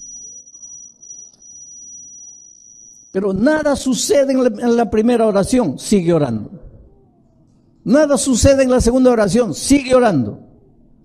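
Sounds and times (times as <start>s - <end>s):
low room noise: 0.0s - 11.0s
steady high-pitched whine: 0.0s - 11.0s.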